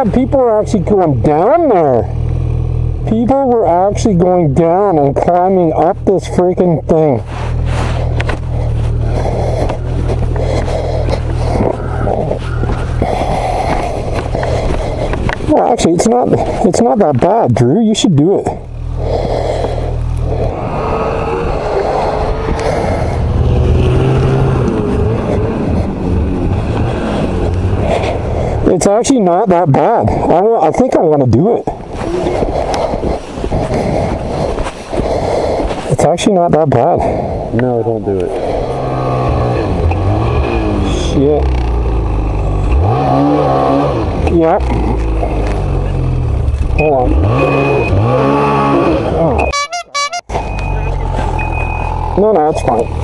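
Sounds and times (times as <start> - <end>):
snowmobile engine running: 0.0 - 50.2
wind buffeting microphone: 7.5 - 17.2, 19.1 - 28.7, 31.6 - 36.0.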